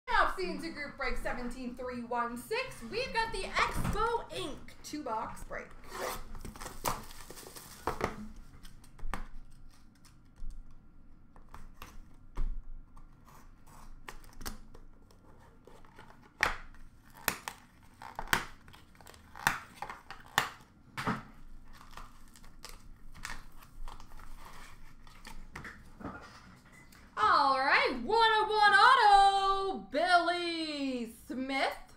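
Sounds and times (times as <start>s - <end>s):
plastic wrap tearing and crinkling: 5.8s - 10.4s, 13.0s - 20.8s, 21.4s - 25.9s.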